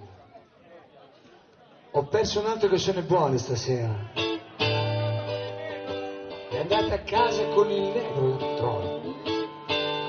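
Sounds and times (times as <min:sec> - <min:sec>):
faint chatter of voices: 0:00.0 - 0:02.4
band guitar and vocals: 0:02.2 - 0:10.0.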